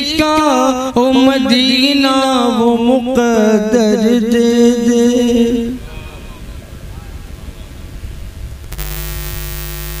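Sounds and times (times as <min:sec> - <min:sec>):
electrical mains hum with hiss: 0:00.0 - 0:10.0.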